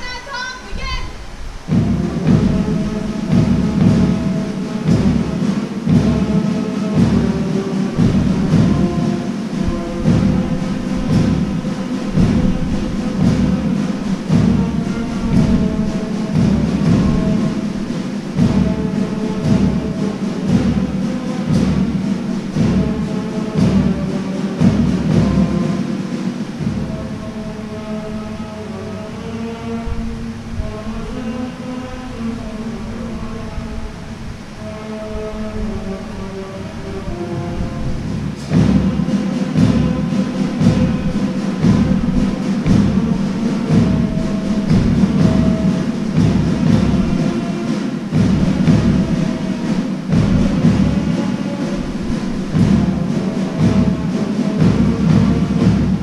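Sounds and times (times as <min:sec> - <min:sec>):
band music with drums: 0:00.0 - 0:31.7, 0:32.3 - 0:56.0.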